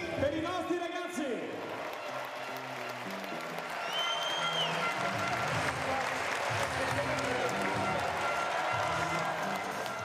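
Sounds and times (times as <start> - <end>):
music playing: 0.0 - 10.0
crowd applause: 1.6 - 10.0.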